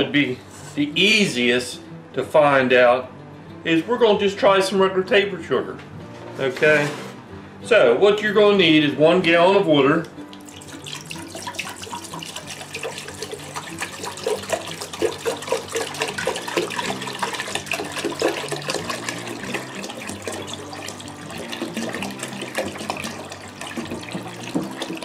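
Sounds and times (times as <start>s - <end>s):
water pouring into a metal pot: 10.2s - 25.0s.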